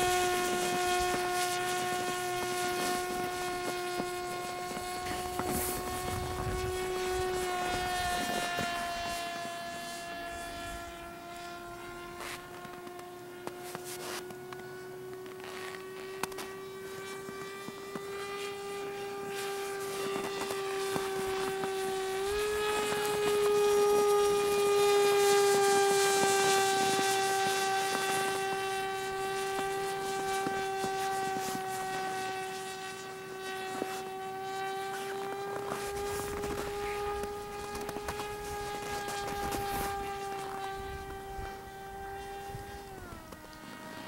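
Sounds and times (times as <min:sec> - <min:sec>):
model plane motor whine: 0:00.0 - 0:44.0.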